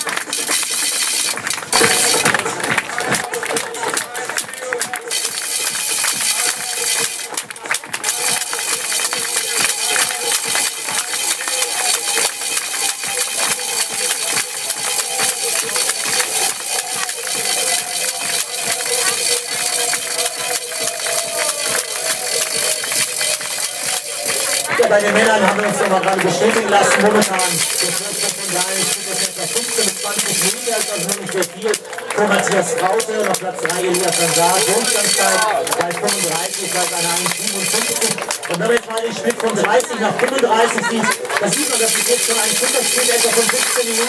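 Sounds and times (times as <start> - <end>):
music over loudspeakers: 0.0 - 44.0
voice over loudspeakers: 1.7 - 44.0.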